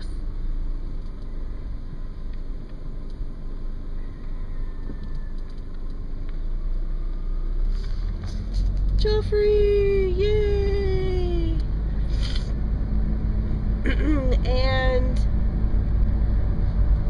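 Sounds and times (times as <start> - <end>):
car engine and tyre rumble: 0.0 - 17.0.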